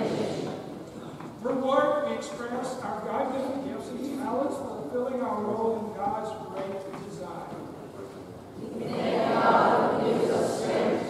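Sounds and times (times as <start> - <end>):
group of voices speaking: 0.0 - 0.8, 8.6 - 11.0.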